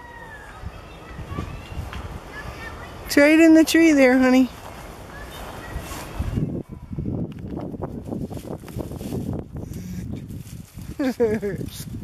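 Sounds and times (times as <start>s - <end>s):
dry fronds rustling and crackling: 1.4s - 12.0s.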